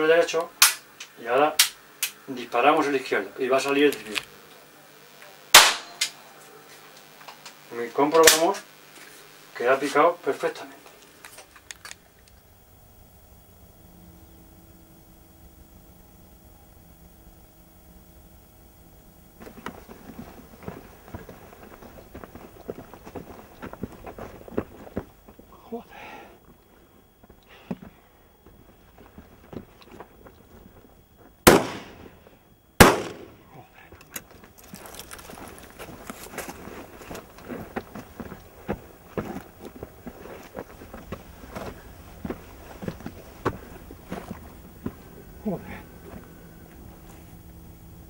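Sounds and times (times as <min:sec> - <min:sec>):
faint crackling and rustling: 0:00.0 - 0:13.6, 0:18.4 - 0:31.4, 0:33.8 - 0:48.0
shotgun shots: 0:05.5 - 0:06.0, 0:31.5 - 0:32.1, 0:32.8 - 0:33.4.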